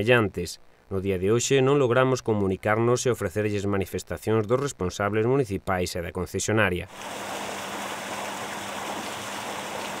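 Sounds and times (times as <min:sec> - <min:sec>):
wastewater rushing into a river: 0:06.9 - 0:10.0.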